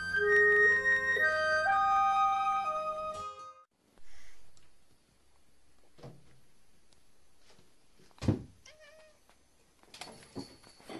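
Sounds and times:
thump: 8.2 - 8.5
cat meowing softly: 8.6 - 9.3.

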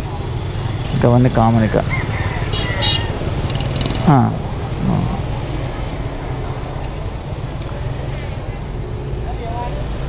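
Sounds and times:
person speaking: 4.1 - 5.4.

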